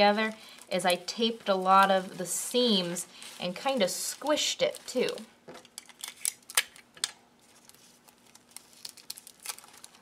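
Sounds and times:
paper crinkling and rustling: 0:00.0 - 0:06.5, 0:07.4 - 0:10.0.

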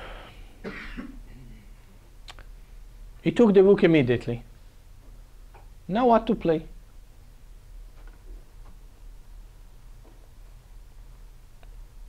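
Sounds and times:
person clearing throat: 0:00.6 - 0:01.7.

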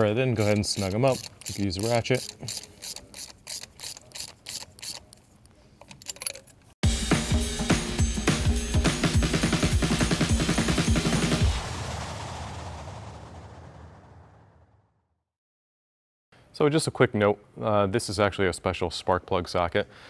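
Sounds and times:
hand ratchet clicking: 0:00.0 - 0:06.7
fast beat background music: 0:06.8 - 0:11.6.

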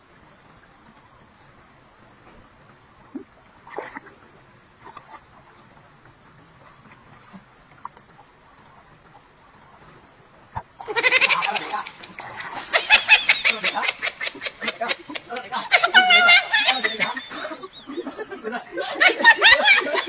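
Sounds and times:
faint outdoor background: 0:00.0 - 0:20.0
man laughing loudly: 0:10.9 - 0:20.0.

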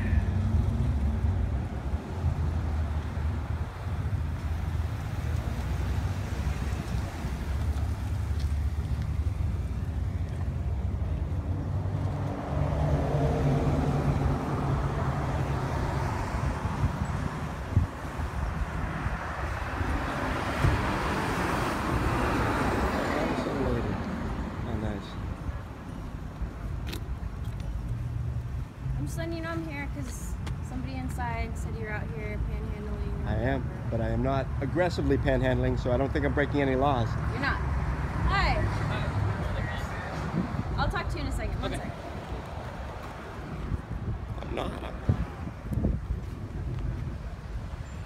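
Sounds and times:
wind rumble on microphone: 0:00.0 - 0:29.0, 0:39.5 - 0:48.0
street traffic: 0:00.0 - 0:48.0.

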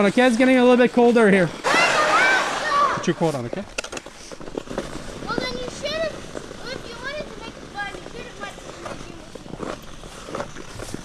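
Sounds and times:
ice skates scraping on ice: 0:00.0 - 0:11.0
children calling out and chattering: 0:01.6 - 0:03.4, 0:05.1 - 0:09.8.

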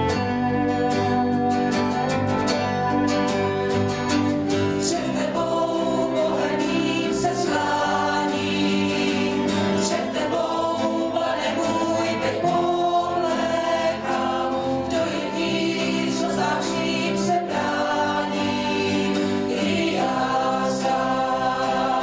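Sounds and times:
mixed choir singing: 0:04.5 - 0:22.0.

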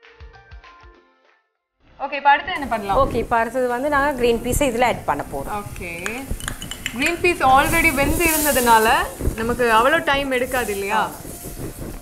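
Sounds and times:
vegetables sizzling in pot: 0:02.6 - 0:12.0.

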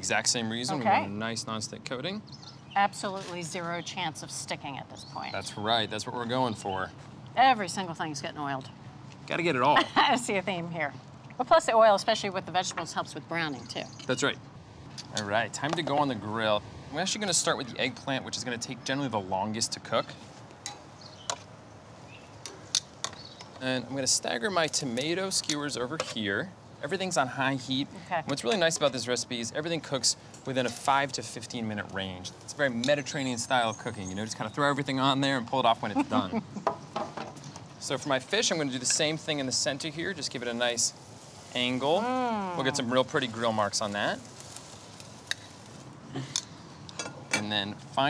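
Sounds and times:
food sizzling on a grill: 0:23.6 - 0:36.0, 0:37.9 - 0:48.0
metal tongs clicking on grill grates: 0:24.6 - 0:26.2.

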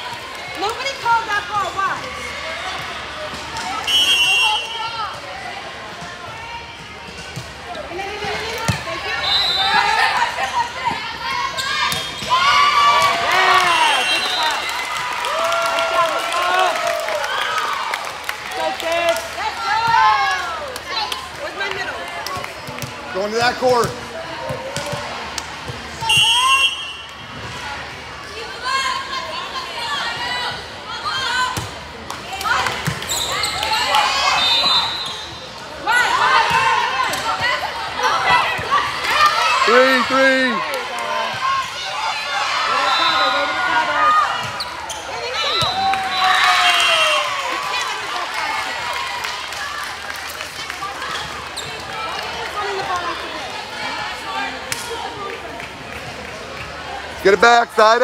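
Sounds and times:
people shouting in a gym: 0:00.0 - 0:17.9, 0:18.6 - 0:22.4, 0:23.5 - 0:49.1.

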